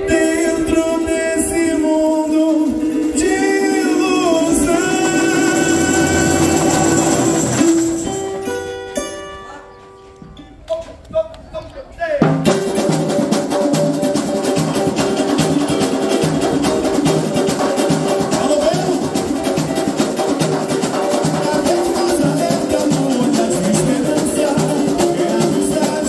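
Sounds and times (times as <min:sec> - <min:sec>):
person singing: 0:00.0 - 0:08.2, 0:20.9 - 0:26.0
samba drum section: 0:00.0 - 0:08.5, 0:12.2 - 0:26.0
strummed cavaquinho: 0:00.0 - 0:10.8, 0:12.2 - 0:26.0.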